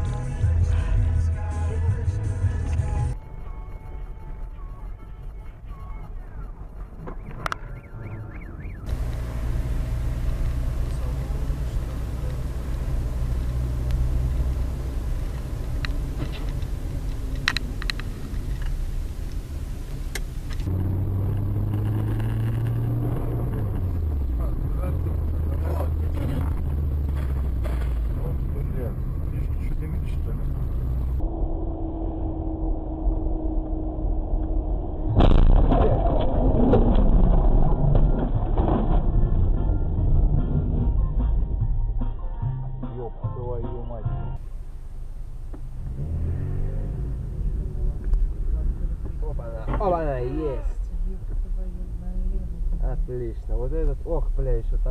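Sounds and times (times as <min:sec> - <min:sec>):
car engine: 0:00.0 - 0:54.9
road noise: 0:00.0 - 0:54.9
loud sudden noise: 0:30.8 - 0:40.9.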